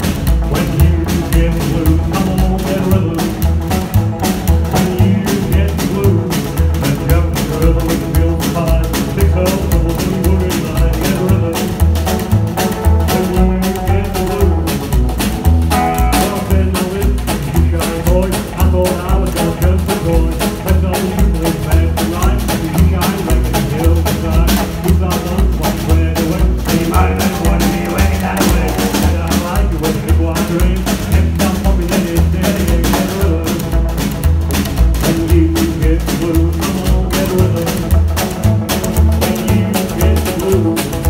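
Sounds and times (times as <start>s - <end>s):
drum kit hits: 0.0s - 41.0s
electric guitar line: 0.0s - 41.0s
upright double bass: 0.0s - 41.0s.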